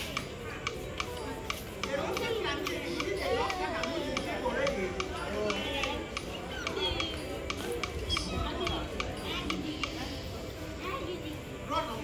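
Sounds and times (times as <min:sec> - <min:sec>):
faint regular ticking: 0:00.0 - 0:10.6
people chattering: 0:00.0 - 0:12.0
small child's voice: 0:10.8 - 0:11.7.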